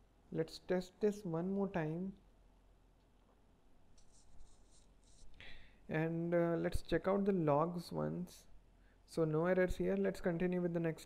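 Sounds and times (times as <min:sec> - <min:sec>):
soft high hiss: 0:00.0 - 0:11.0.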